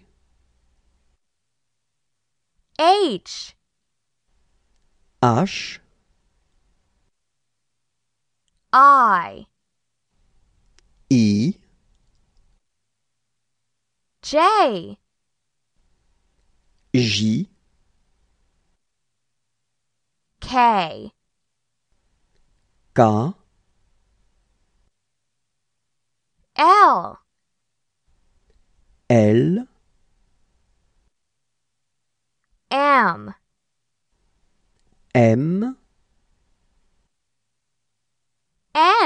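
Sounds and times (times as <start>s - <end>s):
person saying a letter: 2.8s - 3.6s, 5.2s - 5.9s, 8.7s - 9.5s, 11.1s - 11.6s, 14.2s - 15.0s, 17.0s - 17.6s, 20.4s - 21.2s, 23.0s - 23.5s, 26.6s - 27.2s, 29.1s - 29.8s, 32.7s - 33.4s, 35.2s - 35.9s, 38.8s - 39.0s
faint clicks: 11.9s - 12.6s.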